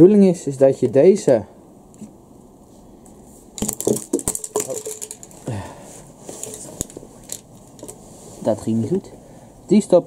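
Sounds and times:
plastic pipes clattering on concrete: 3.6s - 5.5s.

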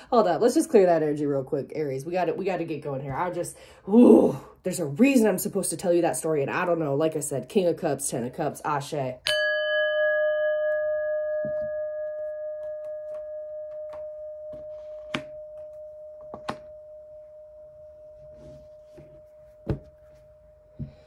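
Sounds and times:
singing bowl ringing: 9.3s - 21.0s.

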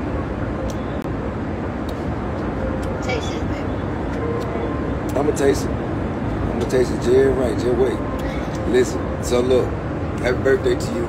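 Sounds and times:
jet cabin rumble and hiss: 0.0s - 11.0s.

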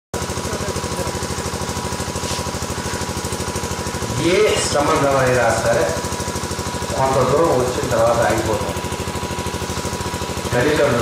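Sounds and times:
pulsing engine-like drone: 0.2s - 11.0s.

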